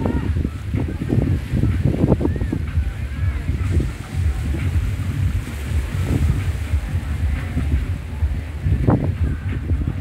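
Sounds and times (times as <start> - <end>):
sea surf: 0.0 - 10.0
wind buffeting microphone: 0.0 - 10.0.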